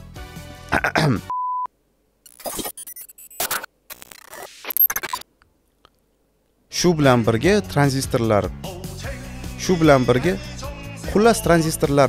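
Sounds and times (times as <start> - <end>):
censor beep: 1.3 - 1.7.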